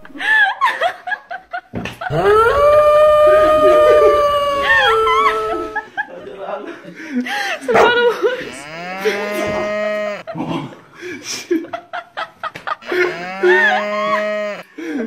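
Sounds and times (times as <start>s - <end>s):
person making moo-like cries: 2.1s - 5.8s, 8.5s - 10.2s, 12.8s - 14.7s.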